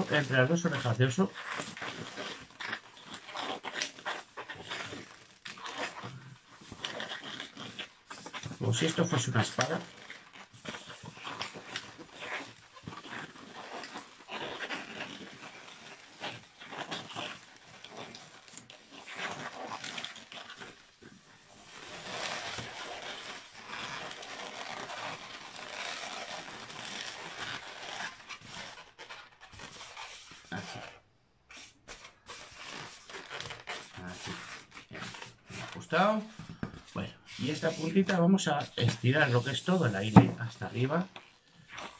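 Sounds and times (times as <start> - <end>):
rubber balloon rubbing and squeaking: 0.0 - 41.9.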